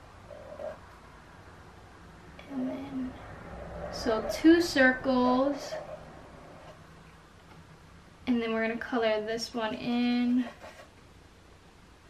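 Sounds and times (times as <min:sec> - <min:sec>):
faint hum: 0:00.0 - 0:12.0.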